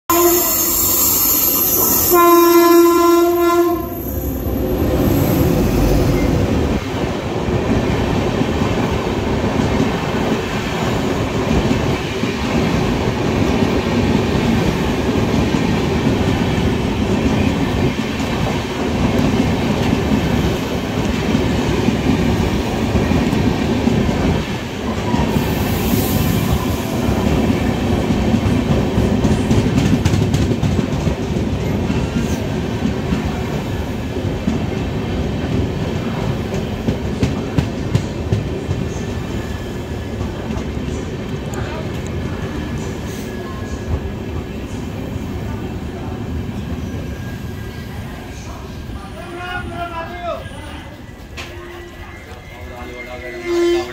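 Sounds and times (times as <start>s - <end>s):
train wheels rumbling on rail: 0.1s - 53.9s
clickety-clack over rail joints: 27.2s - 39.1s, 40.0s - 42.7s.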